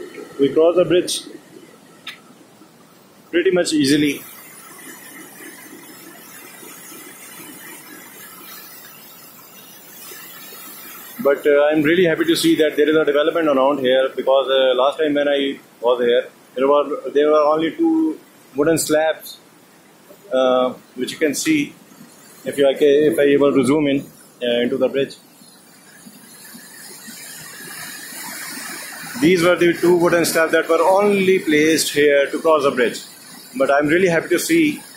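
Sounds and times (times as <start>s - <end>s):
fast mountain river rushing: 25.8s - 34.9s.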